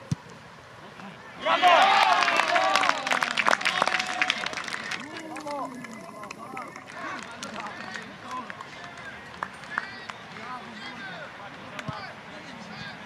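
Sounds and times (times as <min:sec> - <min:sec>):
people shouting: 0:01.4 - 0:03.2.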